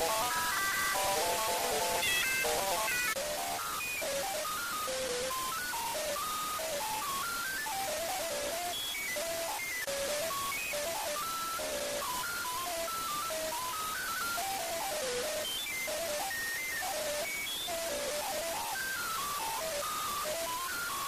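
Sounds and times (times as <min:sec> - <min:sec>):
autotuned stepped notes: 0:00.0 - 0:21.0
steady hiss: 0:00.0 - 0:21.0.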